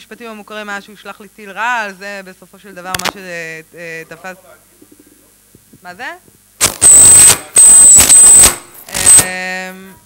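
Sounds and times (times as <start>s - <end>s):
harsh distorted noise bursts: 6.6s - 9.4s
steady buzzing tone: 6.6s - 9.9s.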